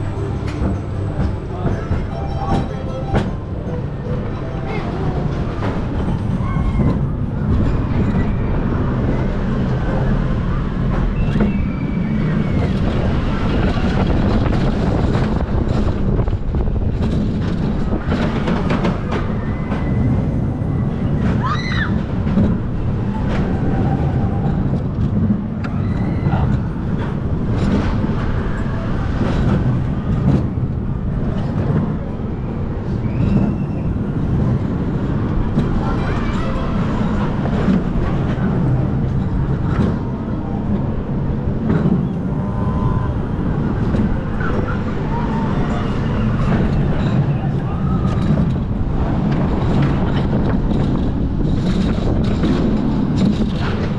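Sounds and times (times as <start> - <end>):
coaster wheels rumbling on rails: 0.0 - 53.9.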